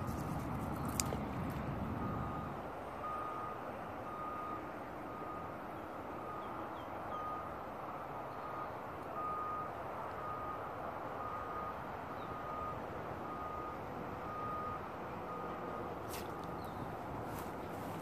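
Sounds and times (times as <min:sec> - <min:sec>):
reversing alarm beeping: 0:02.0 - 0:05.6, 0:06.2 - 0:16.9.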